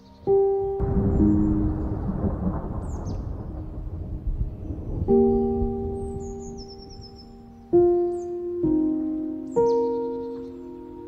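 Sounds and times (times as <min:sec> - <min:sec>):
background music: 0:00.0 - 0:04.2, 0:04.8 - 0:11.0
thunder rumble: 0:00.8 - 0:07.6.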